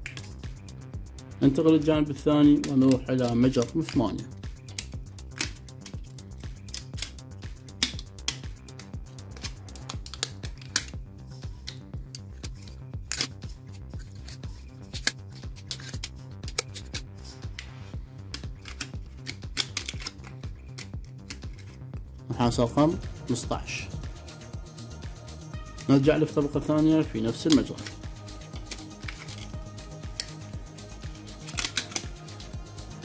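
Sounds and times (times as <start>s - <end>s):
wire clicking and crinkling: 0.0s - 0.7s, 2.5s - 22.2s, 27.3s - 33.0s
background music: 0.0s - 33.0s.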